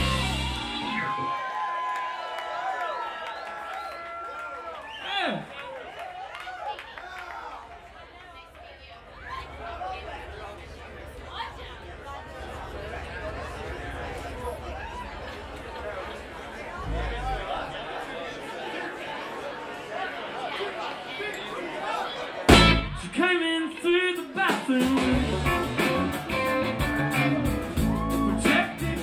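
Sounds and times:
crowd chatter: 0.0s - 29.0s
steady low hum: 10.1s - 18.0s.

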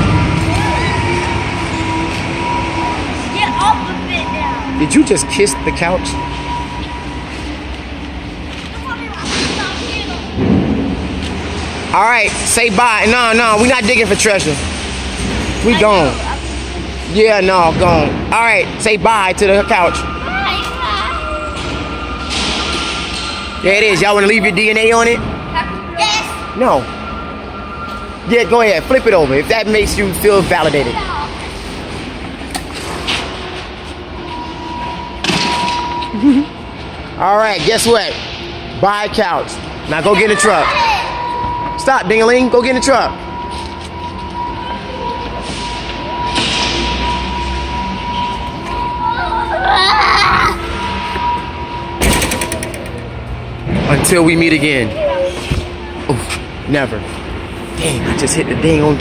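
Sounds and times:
steady high tone: 0.0s - 10.4s, 11.9s - 14.6s, 15.5s - 59.0s
children's voices: 3.2s - 4.8s, 8.6s - 10.4s, 20.2s - 21.6s, 25.5s - 26.5s, 30.8s - 31.6s, 40.0s - 41.3s, 49.0s - 50.8s.

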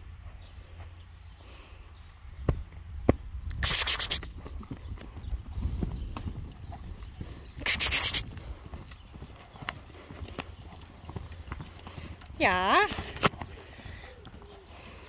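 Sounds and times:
horse hoofbeats on sand: 2.5s - 15.0s
short loud hisses: 3.6s - 4.3s.

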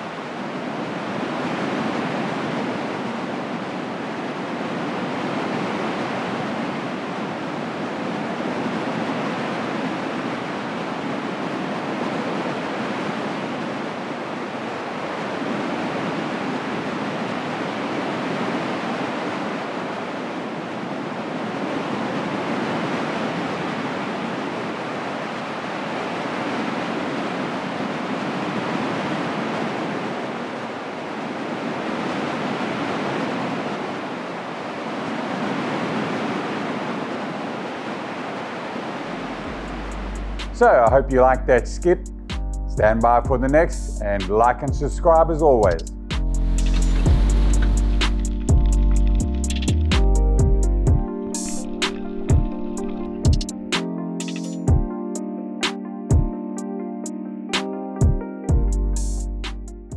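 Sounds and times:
ocean waves washing: 0.0s - 59.9s.

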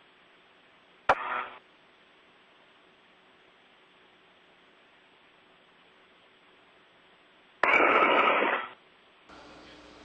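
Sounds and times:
faint radio hiss: 0.0s - 10.0s
radio static burst: 1.1s - 1.6s, 7.6s - 8.8s.

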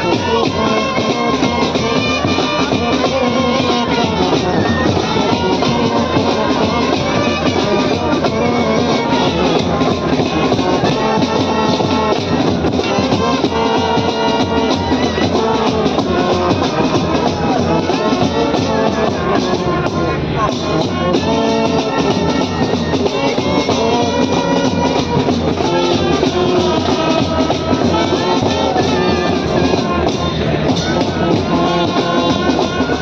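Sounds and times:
brass band playing: 0.0s - 33.0s
snare and bass drums: 0.0s - 33.0s.

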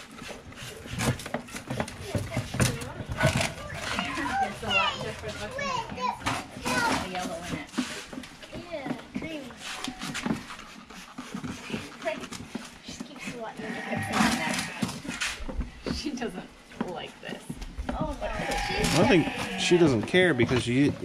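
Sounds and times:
indistinct talking voices: 1.9s - 15.3s, 15.9s - 21.0s.

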